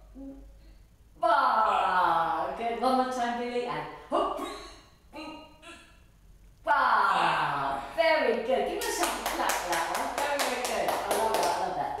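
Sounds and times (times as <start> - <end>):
hands clapping rhythmically: 8.8 - 11.8.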